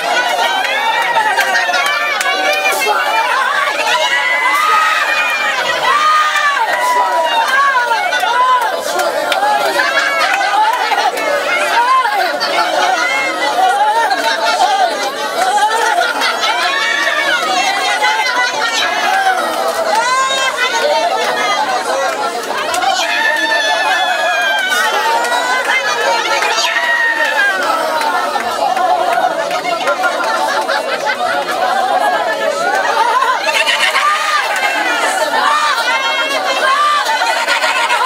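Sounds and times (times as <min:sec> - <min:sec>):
many people praying aloud: 0:00.0 - 0:38.0.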